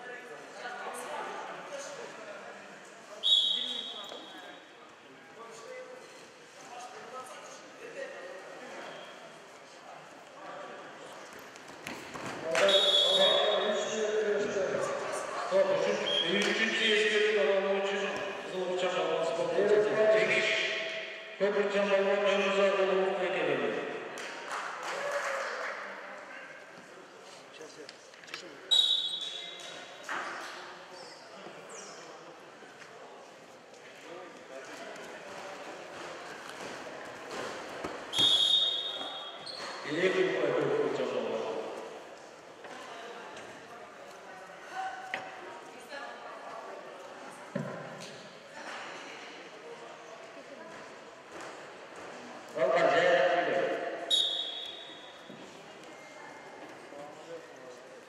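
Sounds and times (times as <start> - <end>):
short high whistle blast: 54.1 - 55.0.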